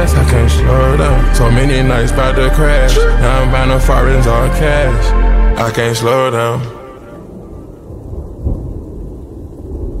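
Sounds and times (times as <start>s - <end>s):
rain: 6.0s - 10.0s
low rumbling thunder: 7.0s - 10.0s.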